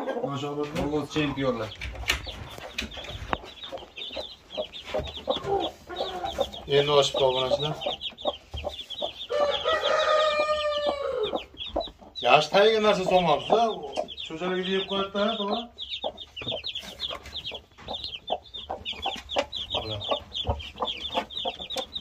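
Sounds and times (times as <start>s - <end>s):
roosters clucking: 0.0s - 22.0s
rooster crowing: 9.3s - 11.5s.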